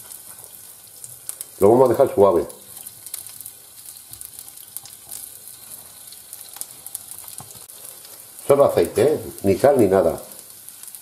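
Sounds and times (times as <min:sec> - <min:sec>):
asparagus sizzling in frying pan: 0:00.0 - 0:11.0.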